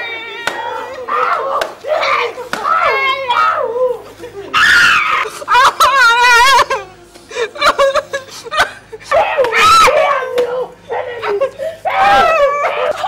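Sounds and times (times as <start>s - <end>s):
people screaming in pain: 0.0s - 7.5s, 9.0s - 13.0s.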